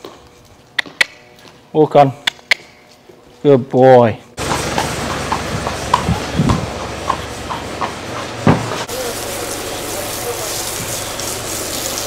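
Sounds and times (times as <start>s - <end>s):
horse hooves on tarmac: 4.4s - 8.9s.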